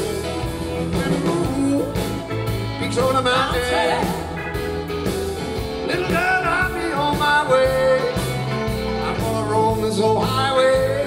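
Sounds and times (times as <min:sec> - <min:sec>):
blues rock band through speakers: 0:00.0 - 0:11.0.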